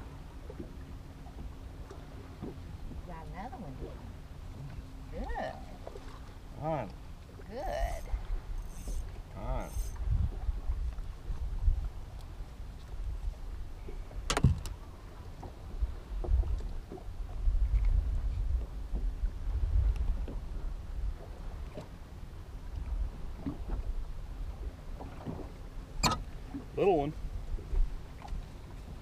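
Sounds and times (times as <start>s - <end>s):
wind and water rumble: 0.0s - 29.0s.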